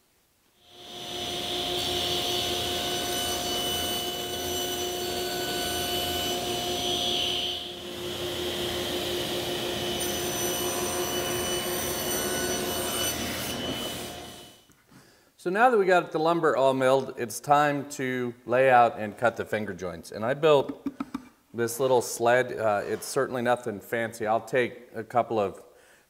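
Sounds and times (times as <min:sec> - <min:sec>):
table saw motor whine: 0:00.7 - 0:14.6.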